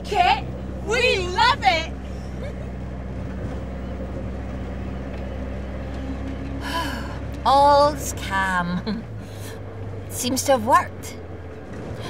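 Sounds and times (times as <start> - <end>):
car engine and road noise hum: 0.0 - 12.0.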